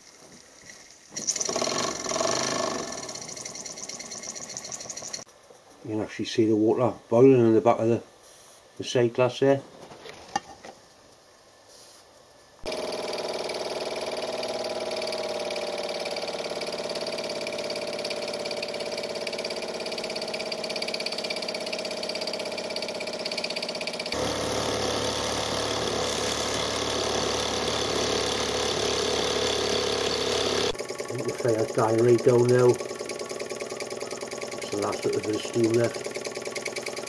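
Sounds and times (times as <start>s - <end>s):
toy steam engine chuffing: 1.2s - 5.3s, 12.7s - 37.0s.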